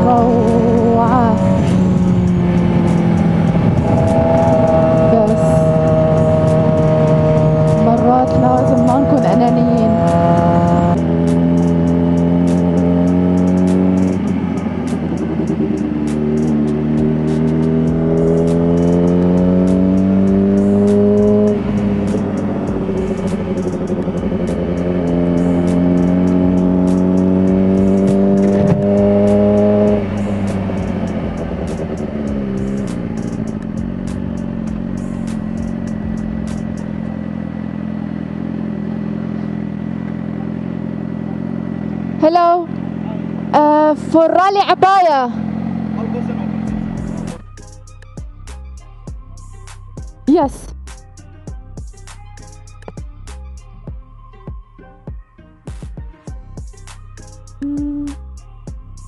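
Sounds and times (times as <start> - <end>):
motorcycle engine shifting gears: 0.0 - 48.2.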